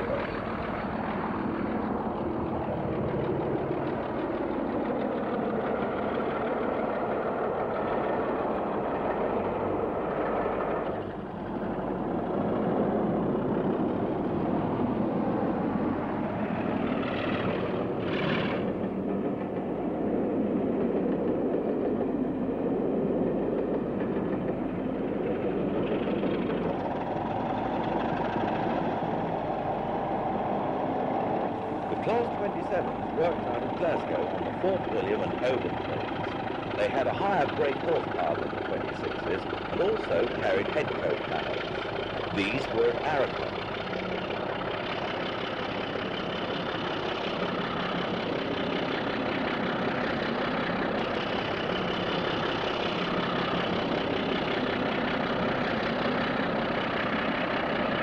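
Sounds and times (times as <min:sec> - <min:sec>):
locomotive engine running: 0:00.0 - 0:58.0.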